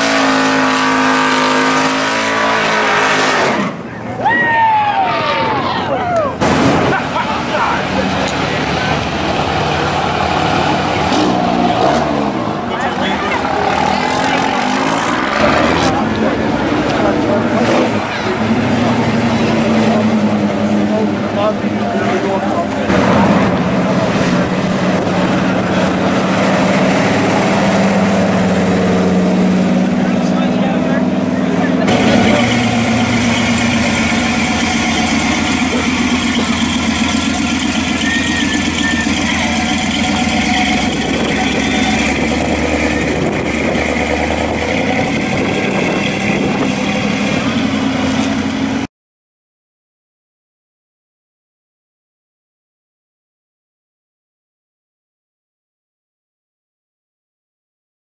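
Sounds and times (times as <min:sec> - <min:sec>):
car engines cruising at low revs: 0:00.0 - 0:48.9.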